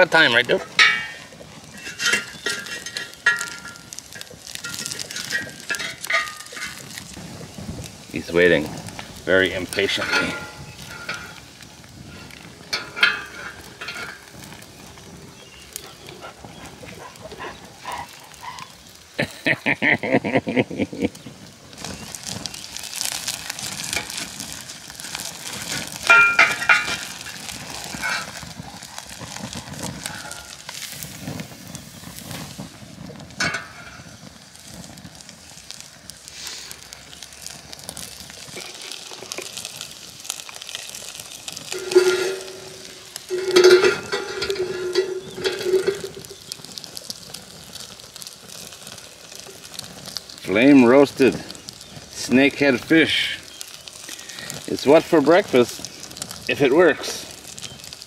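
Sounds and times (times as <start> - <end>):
fish sizzling: 0.0 - 58.0
wood fire crackling: 0.0 - 58.0.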